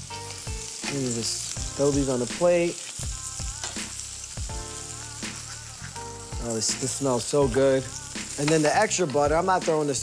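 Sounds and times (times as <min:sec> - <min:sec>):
butter sizzling on a grill pan: 0:00.0 - 0:10.0.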